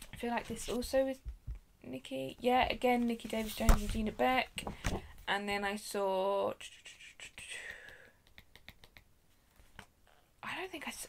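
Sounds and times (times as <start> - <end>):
paper pages rustling: 0.0 - 0.9, 3.0 - 4.2.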